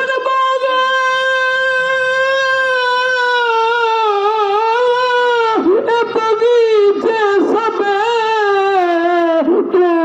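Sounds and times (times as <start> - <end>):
man singing a long high note: 0.0 - 10.0.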